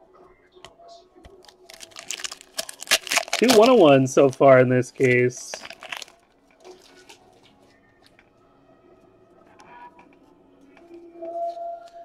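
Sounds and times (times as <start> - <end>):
trading cards rustling in hands: 1.4 - 7.6.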